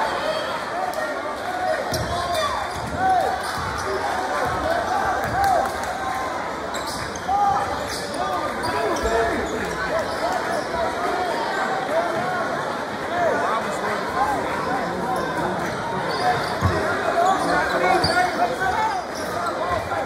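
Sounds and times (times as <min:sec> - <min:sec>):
crowd voices: 0:00.0 - 0:20.0
sneaker squeaks: 0:06.7 - 0:10.7, 0:15.2 - 0:19.9.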